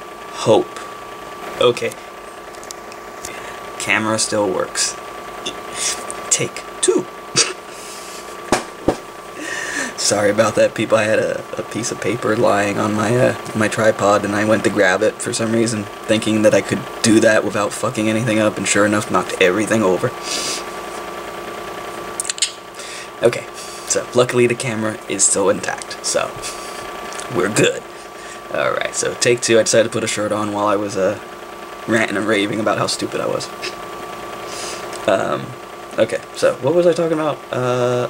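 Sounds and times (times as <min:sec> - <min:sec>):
faint hum: 0:00.0 - 0:38.0
room noise hiss: 0:00.0 - 0:38.0
sharp clicks: 0:22.2 - 0:22.6.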